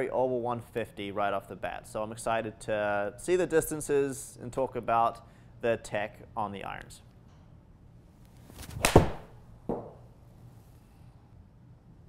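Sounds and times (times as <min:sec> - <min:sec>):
golf club swish: 0:08.3 - 0:09.4
ball thudding on screen: 0:08.6 - 0:10.1
club striking golf ball: 0:08.7 - 0:10.0.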